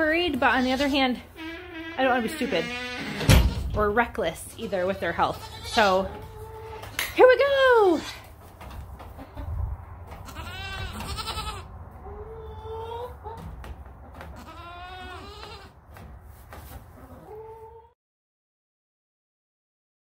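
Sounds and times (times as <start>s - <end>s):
goats bleating: 0.6s - 3.5s, 4.6s - 6.8s, 10.2s - 13.1s, 14.3s - 15.8s
low rumble: 9.4s - 12.6s.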